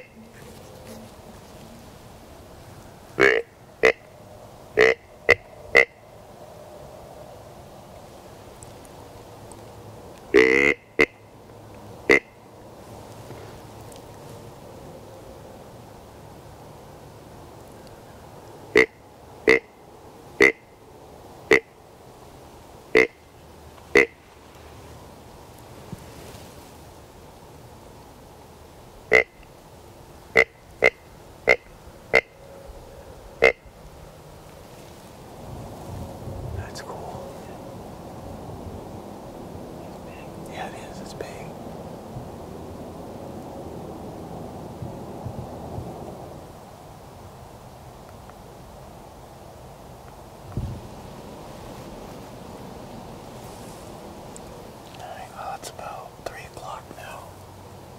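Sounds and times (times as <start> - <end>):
deer grunt call: 3.2 - 4.0, 4.8 - 5.9, 10.3 - 11.1.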